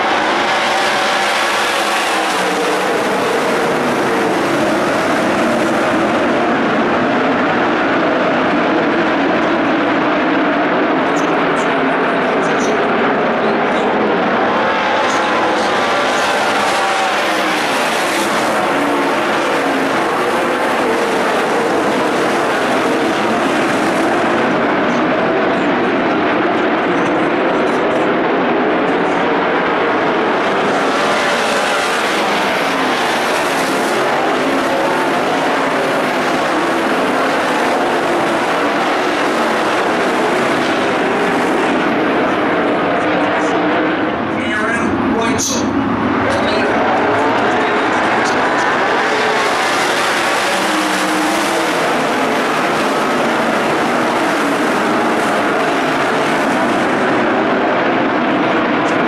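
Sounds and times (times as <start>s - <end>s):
race car engines at full throttle: 0.0s - 59.0s.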